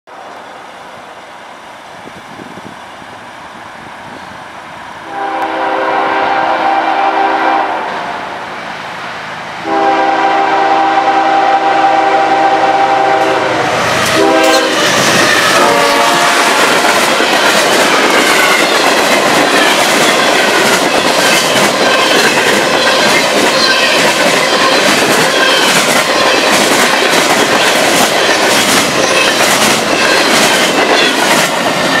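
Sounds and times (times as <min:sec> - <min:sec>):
train air horn blasts: 0:05.0 - 0:08.4, 0:09.6 - 0:16.8
train wheels clicking over rail joints: 0:13.8 - 0:32.0.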